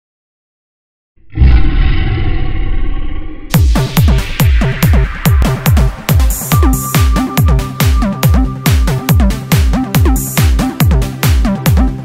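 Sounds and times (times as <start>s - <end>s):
lion roar: 1.2s - 3.6s.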